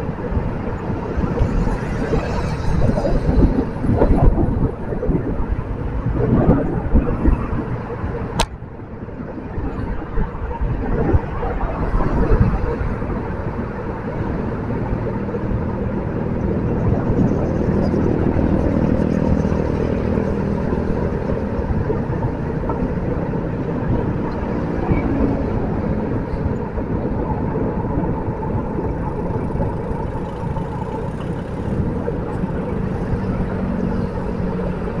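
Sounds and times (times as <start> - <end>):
low engine hum: 0.0 - 35.0
passing traffic: 0.0 - 35.0
wind buffeting microphone: 0.0 - 35.0.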